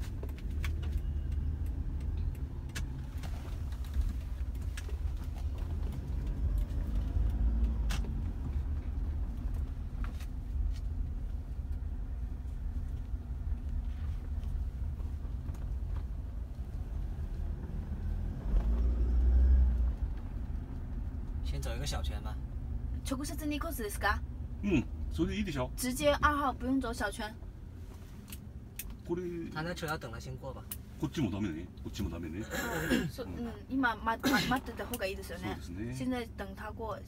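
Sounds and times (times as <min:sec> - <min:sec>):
car rumbling inside cabin: 0:00.0 - 0:37.0.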